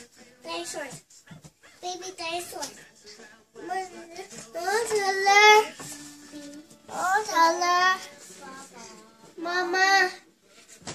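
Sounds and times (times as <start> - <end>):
child's sing-song vocalisation: 3.6 - 10.4.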